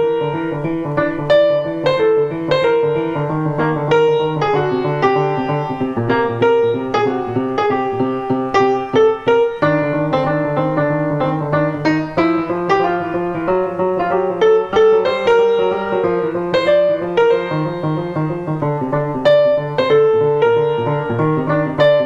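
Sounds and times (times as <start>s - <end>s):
jazz piano: 0.0s - 22.0s.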